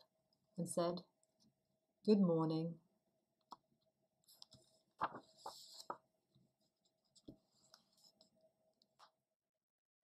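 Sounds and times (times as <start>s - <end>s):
paper rustling: 4.3s - 8.4s.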